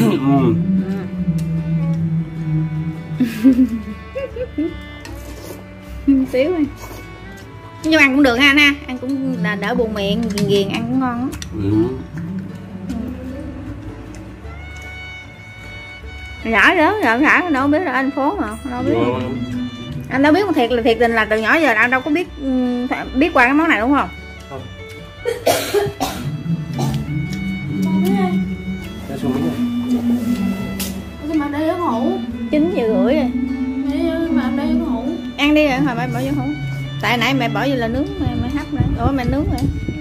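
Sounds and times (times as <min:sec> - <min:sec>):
low hum: 0:00.0 - 0:05.1, 0:09.1 - 0:16.3, 0:18.5 - 0:21.1, 0:25.9 - 0:40.0
background music: 0:00.0 - 0:40.0
soft talk: 0:16.5 - 0:24.7
person coughing: 0:25.3 - 0:27.0.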